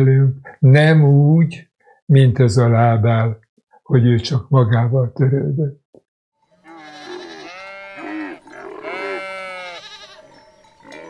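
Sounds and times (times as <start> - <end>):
sheep bleating: 6.5 - 11.0.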